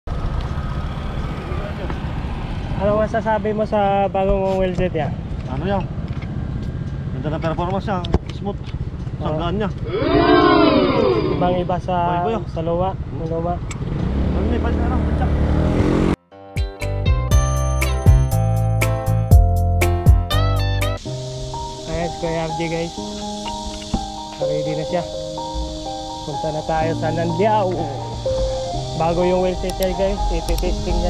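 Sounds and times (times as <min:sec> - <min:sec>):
vehicle engine rumbling: 0:00.1 - 0:16.2, 0:21.0 - 0:31.0.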